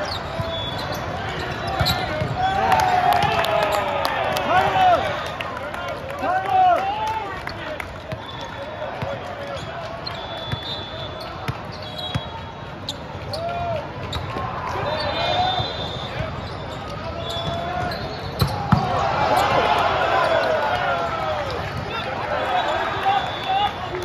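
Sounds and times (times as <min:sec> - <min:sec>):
shoe squeaks: 0:00.0 - 0:02.3, 0:09.5 - 0:18.8
volleyball bouncing on court: 0:00.2 - 0:03.8, 0:08.0 - 0:14.5, 0:16.1 - 0:19.7.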